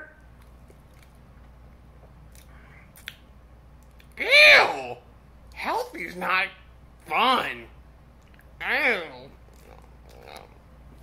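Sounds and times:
man chewing soft food: 0:00.3 - 0:03.2, 0:09.4 - 0:11.0.

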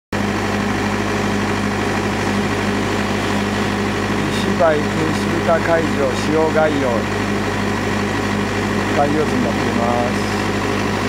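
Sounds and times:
machine hum: 0:00.2 - 0:11.0.

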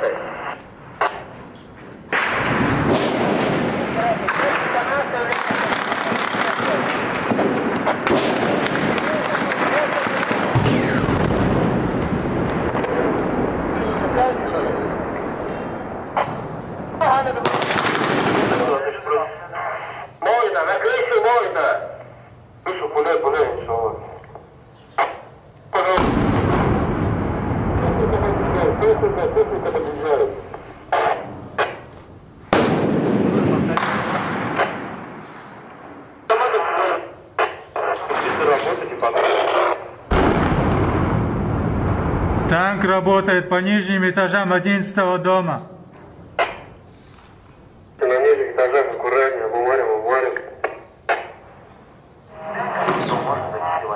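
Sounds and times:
heavy blasts: 0:02.0 - 0:19.2, 0:25.9 - 0:36.3, 0:37.4 - 0:43.1
single gunshots: 0:02.1 - 0:14.2, 0:17.4 - 0:18.8, 0:25.9 - 0:28.2, 0:32.5 - 0:35.4, 0:37.4 - 0:42.1
automatic gunfire: 0:02.2 - 0:11.8, 0:17.4 - 0:18.7.

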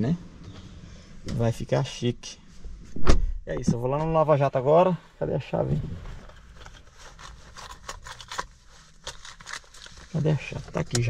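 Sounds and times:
hands rummaging scrapes and clicks: 0:06.1 - 0:11.0.

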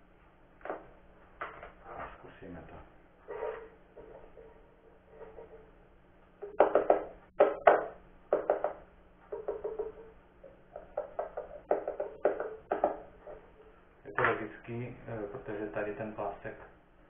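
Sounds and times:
sharp knocks on amplified pickup: 0:06.4 - 0:10.1.

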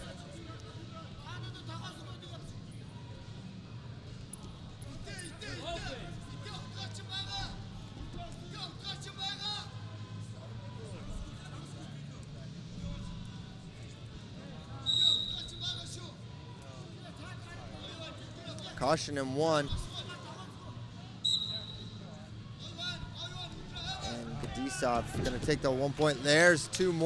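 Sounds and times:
crowd noise: 0:00.0 - 0:27.0
referee's whistle blast: 0:14.8 - 0:15.6, 0:21.2 - 0:22.0
shouted voices: 0:22.6 - 0:27.0.

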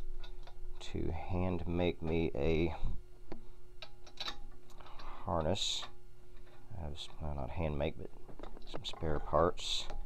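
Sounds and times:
faint steady hum: 0:00.0 - 0:10.0
metallic clicks of bolts: 0:03.8 - 0:06.0.

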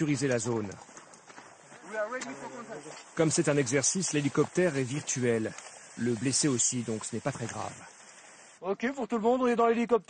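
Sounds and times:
faint outdoor field sound: 0:00.0 - 0:10.0.

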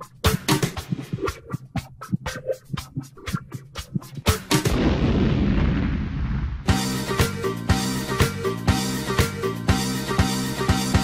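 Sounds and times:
dense low rumble: 0:04.7 - 0:06.8.

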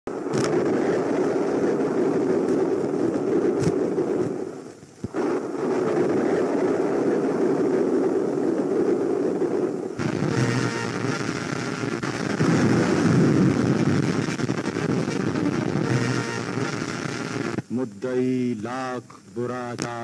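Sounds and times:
film soundtrack rumbling: 0:09.8 - 0:20.0.

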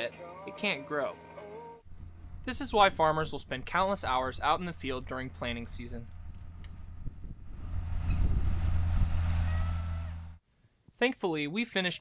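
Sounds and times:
tractor engine humming: 0:01.8 - 0:10.4.

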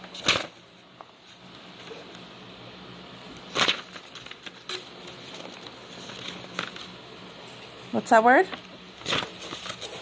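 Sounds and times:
page rustle: 0:00.1 - 0:02.0, 0:03.5 - 0:06.9, 0:08.5 - 0:10.0.

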